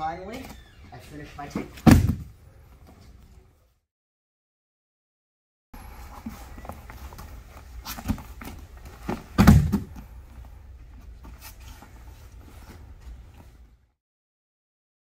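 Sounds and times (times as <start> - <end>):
body thudding on mat: 1.8 - 2.3, 9.0 - 10.0
hands and feet scuffing mat: 6.0 - 13.6.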